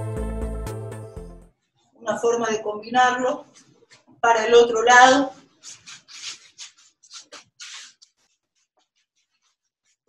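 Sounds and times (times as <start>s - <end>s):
sneakers scuffing on artificial turf: 5.4s - 8.3s.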